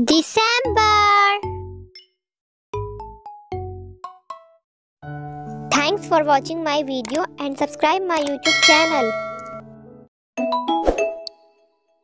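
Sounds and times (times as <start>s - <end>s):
sharp click: 7.0s - 7.3s
ringing tone: 8.5s - 9.6s.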